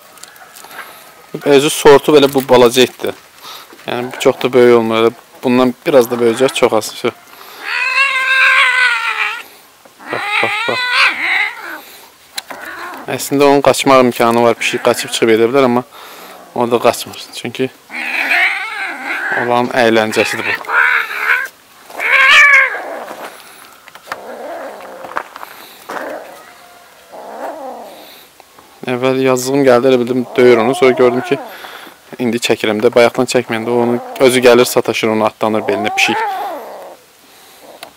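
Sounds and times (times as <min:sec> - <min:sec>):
cat yowling: 0:07.6 - 0:09.4, 0:10.0 - 0:11.9, 0:12.5 - 0:13.1, 0:17.9 - 0:19.5, 0:20.2 - 0:23.1, 0:30.2 - 0:31.5, 0:35.6 - 0:37.0
kitten meowing: 0:10.0 - 0:11.8.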